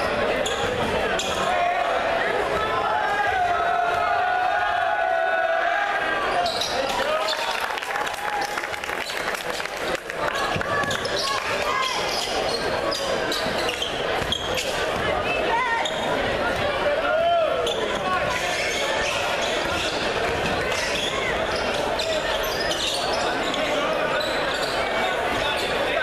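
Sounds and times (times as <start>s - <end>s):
crowd talking and calling out: 0.0s - 26.0s.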